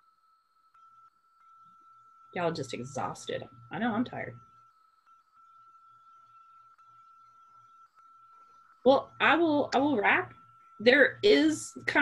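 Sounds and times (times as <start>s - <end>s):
faint high-pitched tone: 0.0s - 12.0s.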